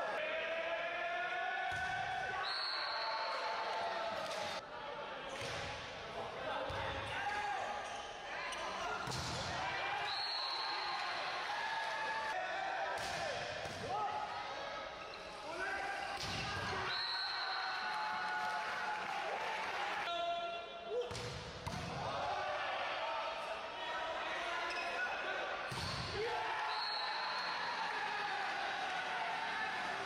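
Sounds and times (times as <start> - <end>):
players shouting: 21.9 - 30.0.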